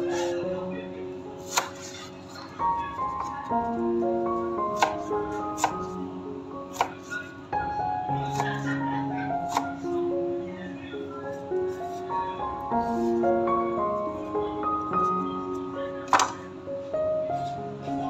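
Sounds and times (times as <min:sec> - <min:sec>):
background music of held notes: 0:00.0 - 0:18.0.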